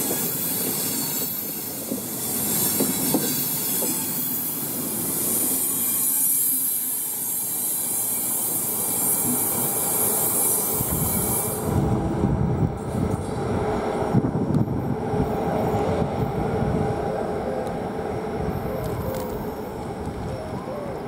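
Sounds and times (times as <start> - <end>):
train wheels rolling on rails: 0.0 - 21.0.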